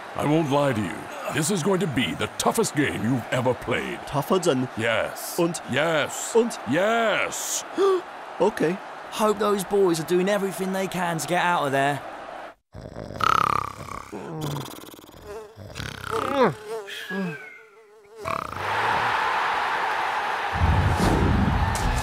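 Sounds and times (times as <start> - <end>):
stadium crowd cheering: 0.0 - 12.6, 18.5 - 22.0
wavering cartoon buzz: 14.1 - 18.8.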